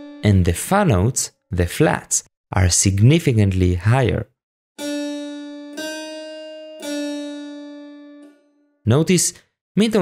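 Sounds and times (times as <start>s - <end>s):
harpsichord notes: 4.8s - 8.4s.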